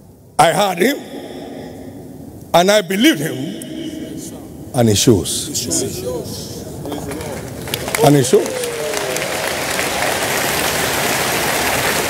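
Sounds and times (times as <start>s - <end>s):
congregation applauding: 6.8s - 12.0s.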